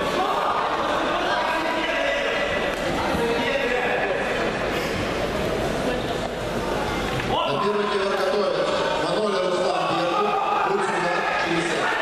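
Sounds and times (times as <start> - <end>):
sports hall noise: 0.0 - 12.0.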